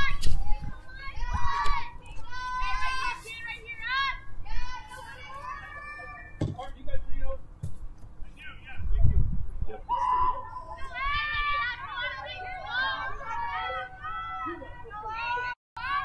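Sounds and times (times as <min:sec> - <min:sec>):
players calling out and cheering: 0:00.0 - 0:07.5, 0:09.6 - 0:16.0.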